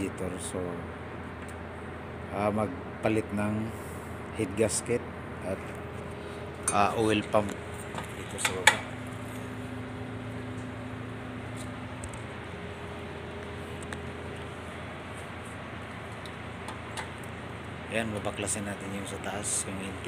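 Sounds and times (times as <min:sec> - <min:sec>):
low workshop hum: 0:00.0 - 0:20.0.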